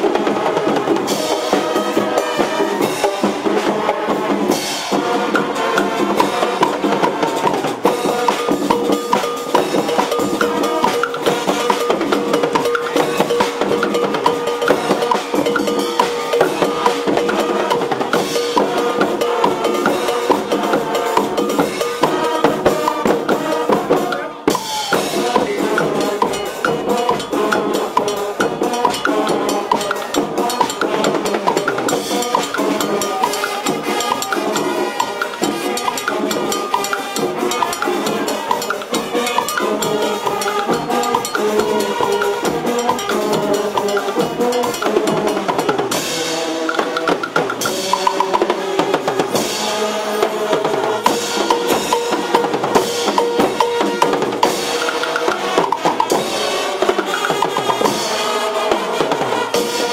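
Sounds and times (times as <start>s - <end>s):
horns playing a melody: 0.0s - 59.9s
marching band playing: 0.0s - 59.9s
sharp percussion strikes: 0.0s - 59.9s
snare and bass drums: 0.0s - 59.9s.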